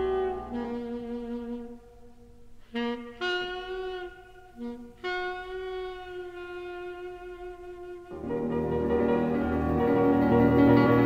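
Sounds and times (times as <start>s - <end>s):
saxophone jazz ballad: 0.0s - 11.0s
sparse accompaniment: 7.3s - 11.0s.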